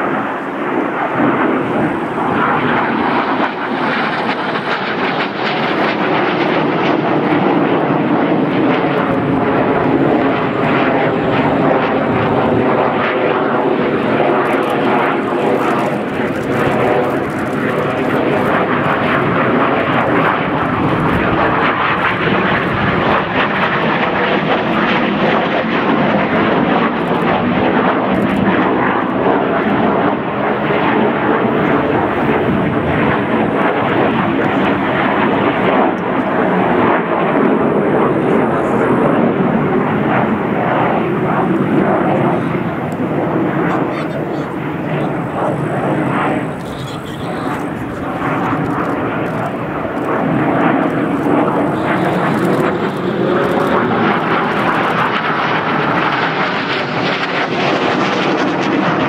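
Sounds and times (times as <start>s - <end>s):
jet engines roaring: 0.0s - 59.0s.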